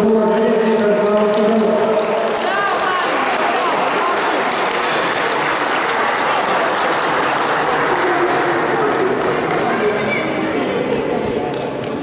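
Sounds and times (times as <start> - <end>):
audience applauding: 1.0 - 12.0.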